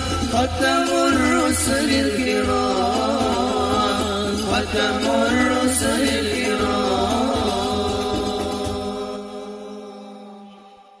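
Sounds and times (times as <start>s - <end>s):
frame drums: 0.0s - 9.4s
chanted singing: 0.0s - 11.0s.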